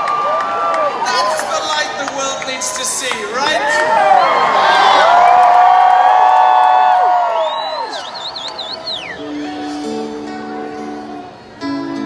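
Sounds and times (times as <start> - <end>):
arena crowd cheering and screaming: 0.0 - 12.0.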